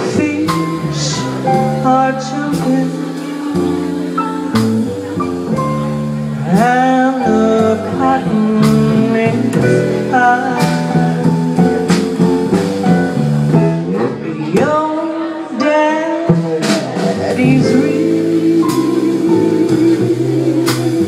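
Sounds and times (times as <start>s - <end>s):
woman singing: 0.0s - 5.6s, 6.3s - 12.2s, 13.9s - 21.0s
plucked double bass: 0.0s - 21.0s.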